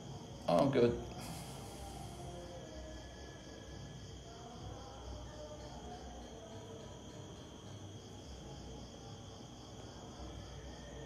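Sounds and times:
faint insect chirring: 0.0s - 11.0s.

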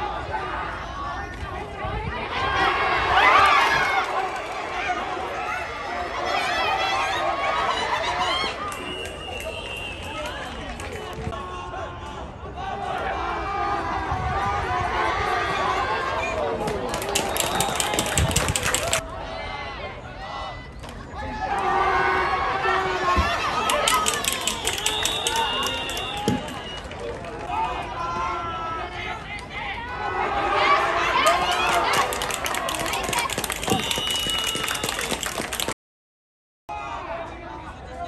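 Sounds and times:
referee's whistle: 8.6s - 10.6s, 17.1s - 18.4s, 23.9s - 26.9s, 33.6s - 35.2s
people chattering: 14.8s - 35.7s
players shouting: 21.2s - 35.1s.

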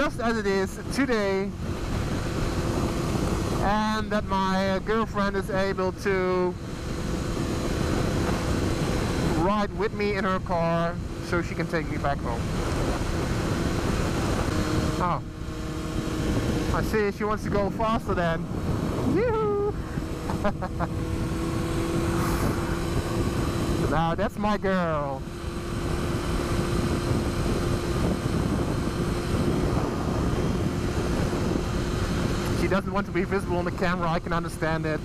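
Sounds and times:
motorcycle engine drone: 0.0s - 35.0s
wind rushing: 12.0s - 24.2s, 25.2s - 33.1s.

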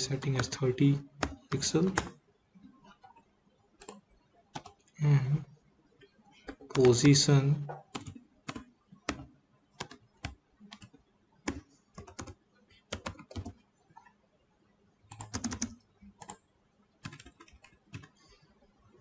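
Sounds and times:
computer keyboard typing: 0.0s - 2.2s, 3.8s - 5.0s, 6.4s - 14.2s, 15.1s - 18.2s.

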